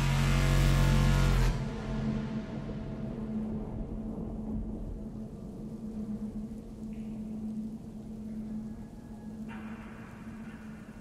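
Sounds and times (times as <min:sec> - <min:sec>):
wind-like rush with low hum: 0:00.0 - 0:11.0.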